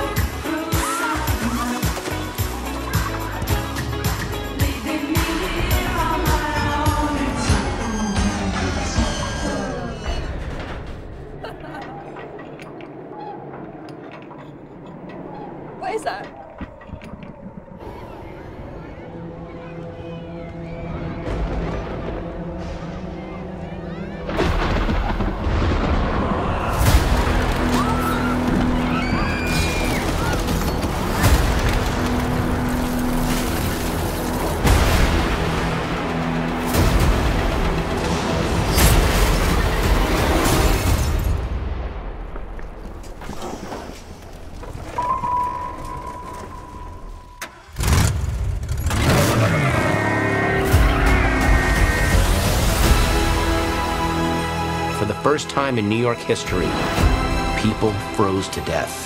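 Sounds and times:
trailer score music: 0.0s - 59.0s
deep rumbling and crashing: 5.8s - 54.4s.

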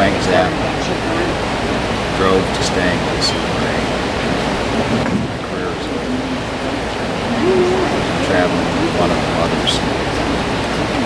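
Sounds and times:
man's voice: 0.0s - 4.2s, 5.4s - 11.0s
creek water rushing: 0.0s - 11.0s.

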